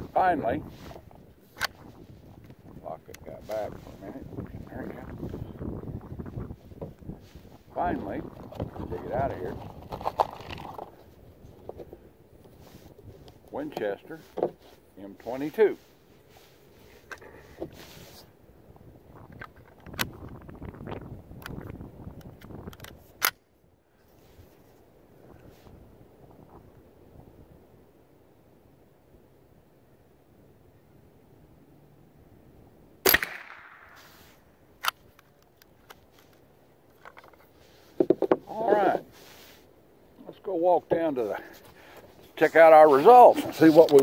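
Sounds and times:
rifle handling clicks and rustling: 0:01.4 - 0:03.6, 0:19.3 - 0:20.4, 0:21.4 - 0:23.4, 0:33.1 - 0:38.4, 0:41.6 - 0:44.0
rifle shot crack: 0:33.0 - 0:34.2.

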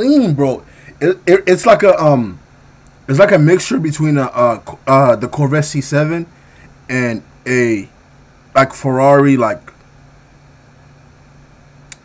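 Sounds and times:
faint hiss: 0:00.0 - 0:12.0
low hum: 0:00.0 - 0:12.0.

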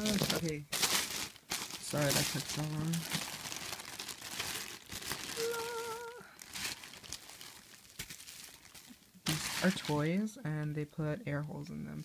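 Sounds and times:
plastic wrapping crinkling: 0:00.0 - 0:10.3
person humming: 0:05.3 - 0:06.4.

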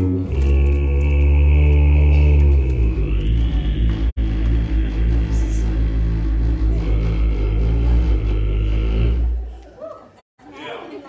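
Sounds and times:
deep bass note: 0:00.0 - 0:09.6.

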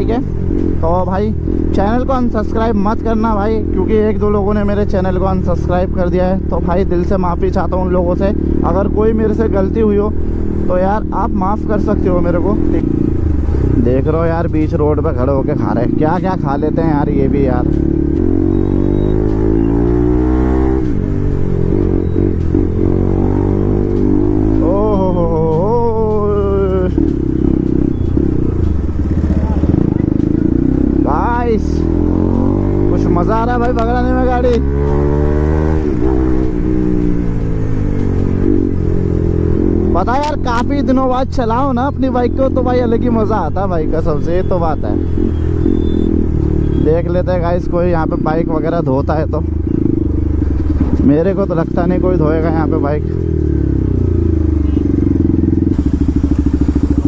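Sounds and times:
motorcycle engine cruising: 0:00.0 - 0:57.0.

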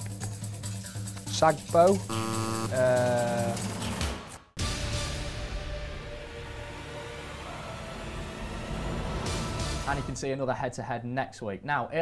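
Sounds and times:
faint held tones: 0:02.1 - 0:02.8.

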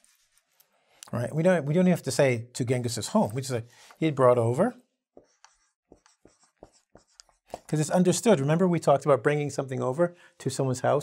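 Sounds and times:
marker writing on whiteboard: 0:05.1 - 0:07.8.

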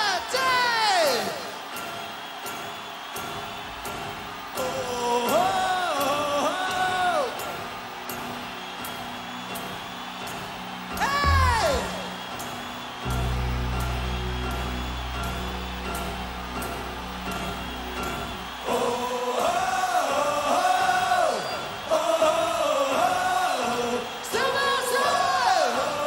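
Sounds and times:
cymbal ticks: 0:01.6 - 0:21.8
deep bass note: 0:11.2 - 0:12.3, 0:13.0 - 0:18.6.

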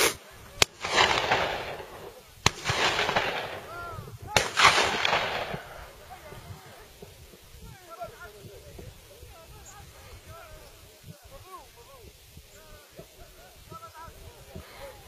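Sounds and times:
gunshots with rolling echo: 0:00.0 - 0:07.2.

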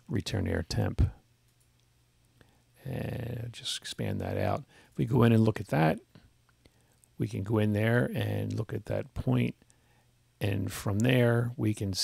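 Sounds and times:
person speaking: 0:02.8 - 0:06.2, 0:07.2 - 0:09.6.

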